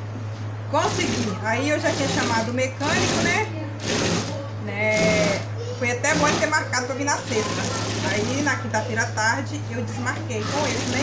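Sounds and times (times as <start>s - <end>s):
low motor hum: 0.0s - 11.0s
industrial sewing machine stitching: 0.8s - 8.7s, 10.4s - 11.0s.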